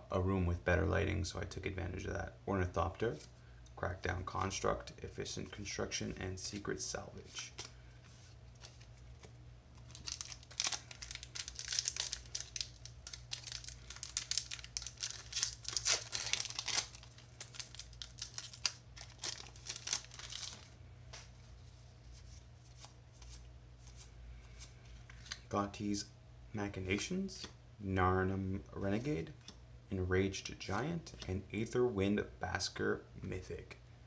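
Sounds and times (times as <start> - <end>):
foil wrapper tearing and crinkling: 9.8 - 20.7.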